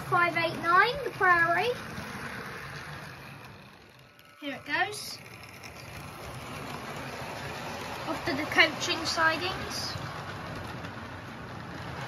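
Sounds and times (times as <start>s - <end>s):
model train rolling on rails: 0.0s - 12.0s.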